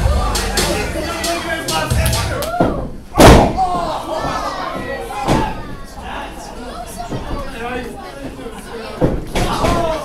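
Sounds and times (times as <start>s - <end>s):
body slamming onto ring mat: 2.6s - 3.8s.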